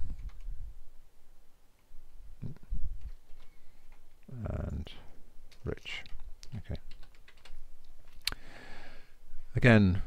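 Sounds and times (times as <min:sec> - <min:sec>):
computer keyboard typing: 0:00.1 - 0:00.5, 0:05.5 - 0:08.2.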